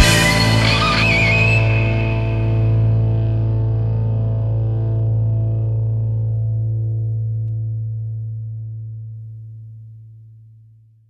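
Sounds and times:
distorted electric guitar chord ringing: 0:00.0 - 0:09.1
low sustained hum: 0:00.0 - 0:10.8.

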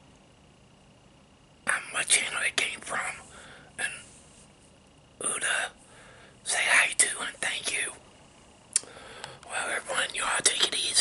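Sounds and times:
man whispering: 0:01.6 - 0:04.1, 0:05.2 - 0:05.8, 0:06.4 - 0:08.0, 0:09.4 - 0:11.0.

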